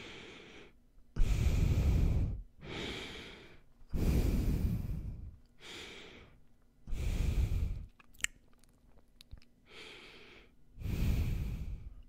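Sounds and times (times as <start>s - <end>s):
breathing through the nose: 0.0s - 7.9s, 9.7s - 12.0s.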